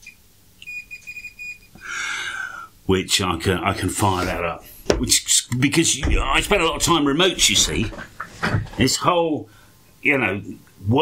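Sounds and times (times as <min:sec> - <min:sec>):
breathy hiss: 0:01.8 - 0:02.8.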